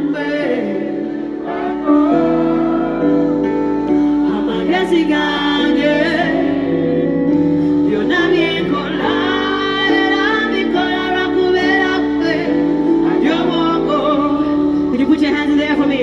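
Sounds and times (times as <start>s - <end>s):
woman singing: 0.0s - 3.4s, 4.0s - 7.1s, 7.7s - 16.0s.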